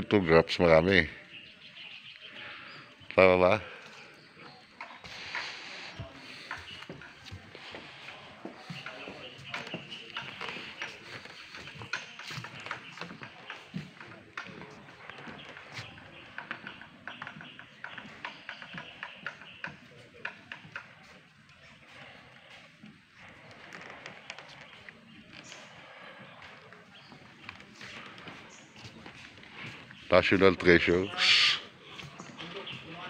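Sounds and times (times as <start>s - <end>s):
footsteps on rocky sandy floor: 21.7s - 31.1s.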